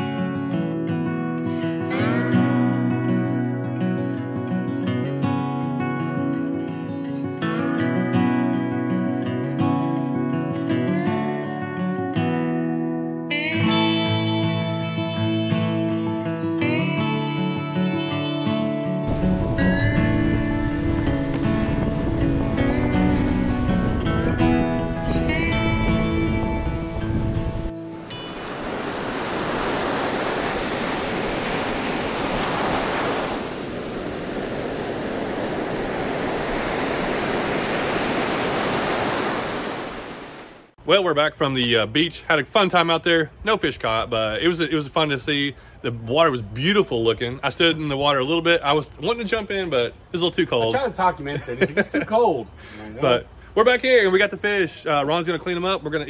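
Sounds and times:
acoustic guitar music: 0.0 - 31.4
ocean waves breaking on beach: 28.0 - 40.8.

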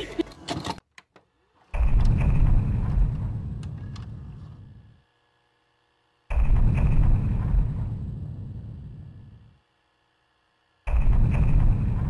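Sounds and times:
deep cinematic boom: 6.3 - 9.4.

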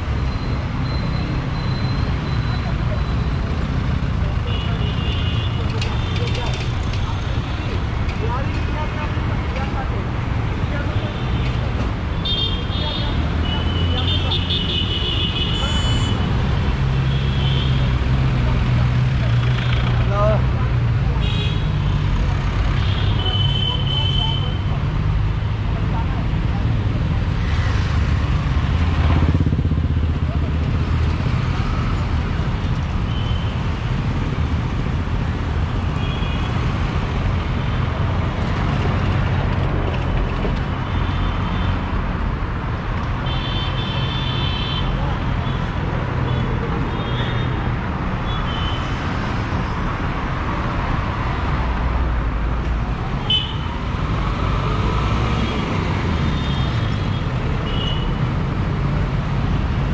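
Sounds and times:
traffic engines rumbling: 0.0 - 59.9.

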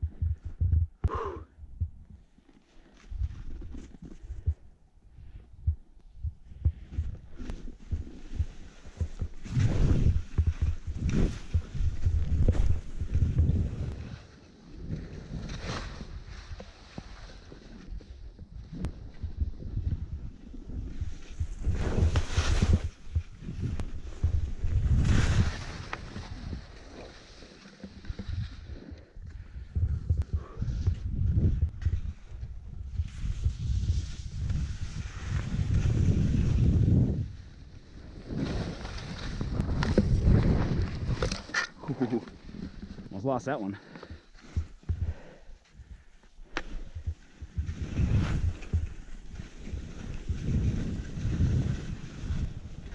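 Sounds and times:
wind buffeting microphone: 5.4 - 14.2, 28.0 - 41.4
skis swishing over packed snow: 20.6 - 28.9, 32.9 - 44.8, 46.7 - 52.9.

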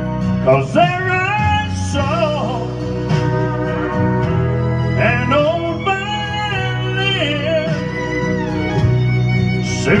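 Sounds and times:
slow country ballad: 0.0 - 10.0.

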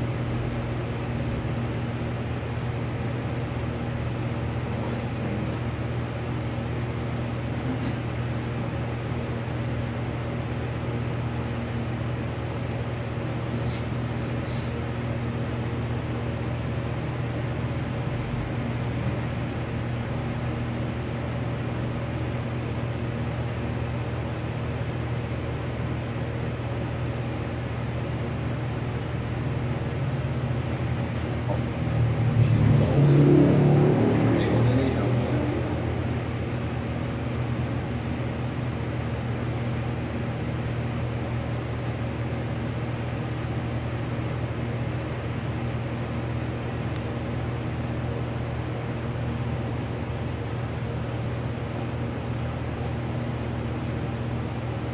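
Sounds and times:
low mechanical hum: 0.0 - 54.9
passing vehicle: 31.8 - 36.4.

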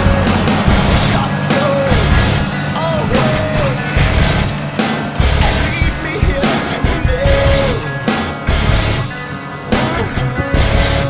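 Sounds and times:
tractor engine under load: 0.0 - 9.2
music with melody and beat: 0.0 - 11.0.

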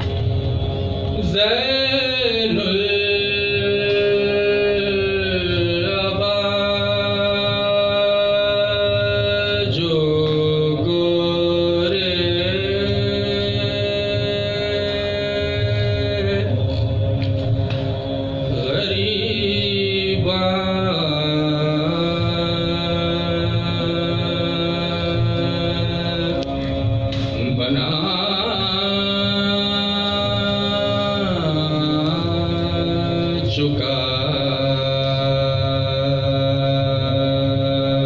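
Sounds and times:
man chanting: 1.1 - 16.8, 18.5 - 38.0.

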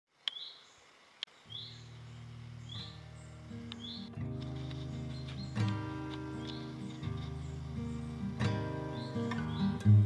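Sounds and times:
music with sustained low notes: 1.5 - 10.0.

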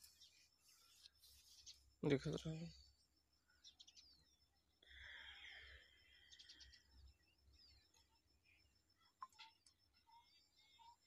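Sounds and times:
faint outdoor ambience: 0.0 - 11.0.

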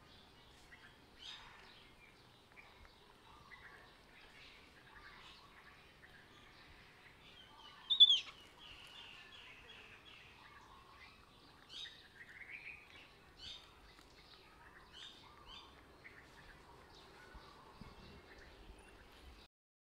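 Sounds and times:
high-pitched animal chirps: 7.9 - 8.3.

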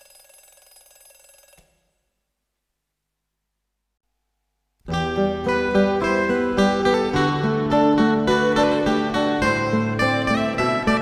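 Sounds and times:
faint bell ringing rapidly: 0.0 - 1.9.

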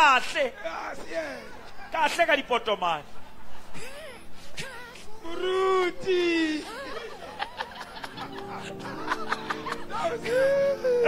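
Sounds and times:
man laughing into microphone: 6.6 - 11.0
held music chord: 8.1 - 11.0.

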